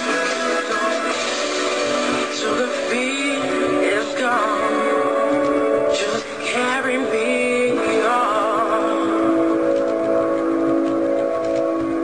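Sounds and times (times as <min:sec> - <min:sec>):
person singing: 0:00.0 - 0:10.3.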